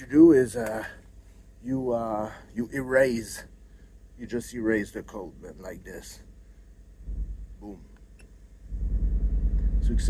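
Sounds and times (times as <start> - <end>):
low pulsing rumble: 2.6 - 10.0.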